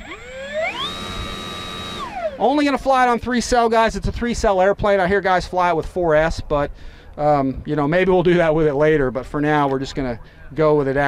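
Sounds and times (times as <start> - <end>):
electric motor whine: 0.0 - 2.5.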